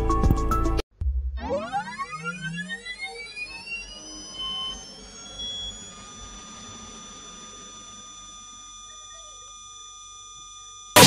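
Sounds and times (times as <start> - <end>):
synthetic whine rising in pitch: 1.0 - 11.0.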